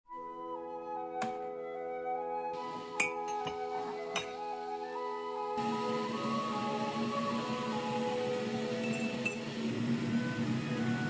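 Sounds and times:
background music slow melody: 0.1 - 11.0
ceramic mugs clinking: 3.0 - 3.6.

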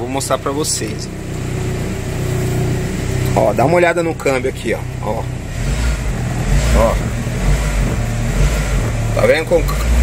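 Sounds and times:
engine running hum: 0.0 - 10.0.

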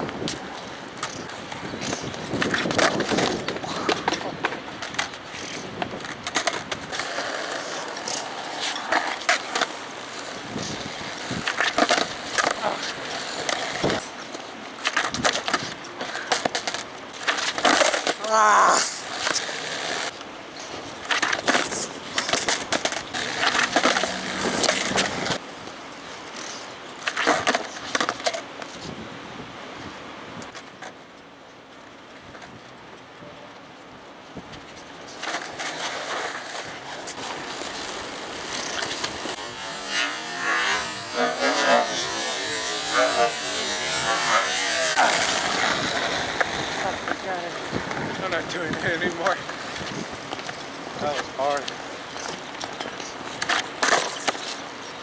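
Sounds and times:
skateboard wheels rolling: 0.0 - 55.0
skateboard knocking and clattering: 0.1 - 18.2, 21.0 - 25.4, 27.0 - 28.6, 40.4 - 55.0.

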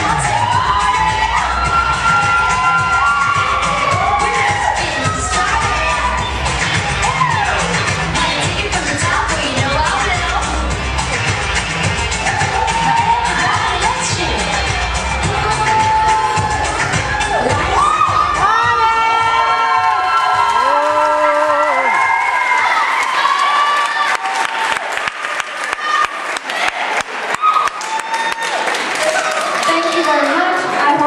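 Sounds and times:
applause and whoops: 0.0 - 8.0, 12.2 - 13.6, 14.7 - 31.0
pop music with thumping bass: 0.0 - 21.8
crowd cheering: 0.0 - 31.0.

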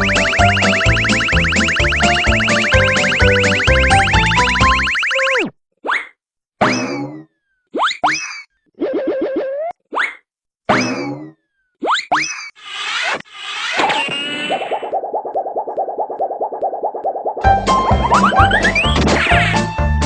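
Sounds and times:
background music: 0.0 - 5.0, 17.4 - 20.0
cartoon boings: 0.0 - 7.2
rising zips: 12.4 - 14.9.

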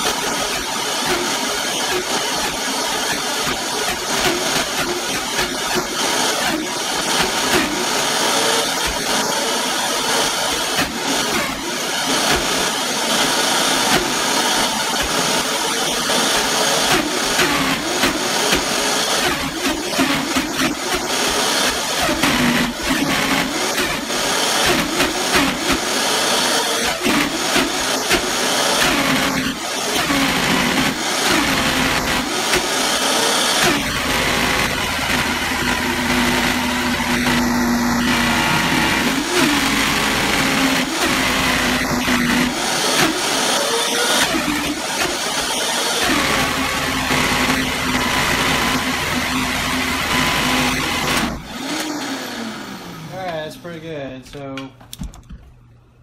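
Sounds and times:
blender motor running: 0.0 - 53.3.

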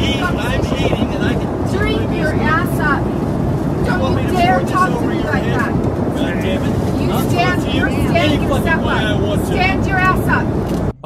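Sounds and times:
people arguing with raised voices: 0.0 - 10.6
airplane cabin rumble: 0.0 - 11.0.

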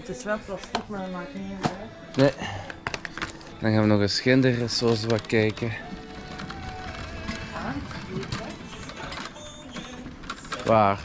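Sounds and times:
faint store music: 0.0 - 11.0
steady hubbub: 0.0 - 11.0.

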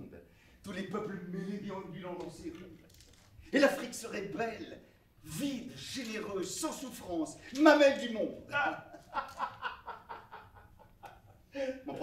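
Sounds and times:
man chuckling: 8.9 - 12.0.

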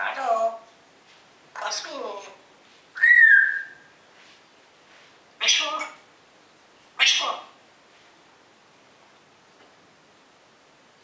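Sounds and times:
word-like parrot sound: 3.0 - 3.8, 5.4 - 6.0, 7.0 - 7.6
parrot whistling: 3.0 - 3.9.

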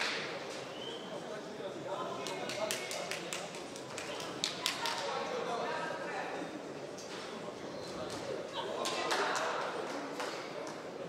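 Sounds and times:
crowd murmur and shouts: 0.0 - 11.0.

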